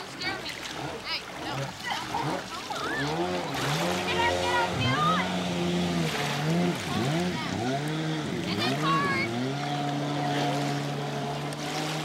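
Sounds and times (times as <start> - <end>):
jet ski engine revving: 0.0 - 12.0
water splashing: 0.0 - 12.0.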